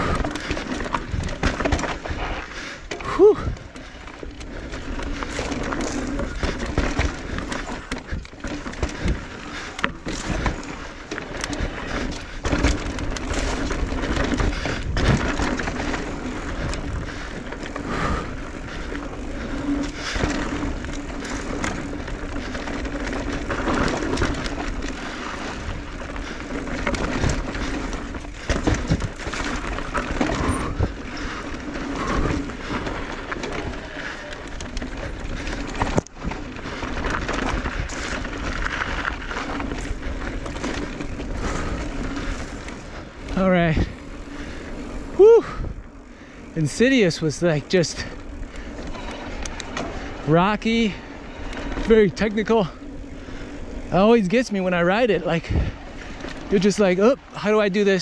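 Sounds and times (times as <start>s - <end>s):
bike knocking and rattling: 0.0s - 58.0s
tyres rushing on dirt: 0.0s - 58.0s
wind: 0.0s - 58.0s.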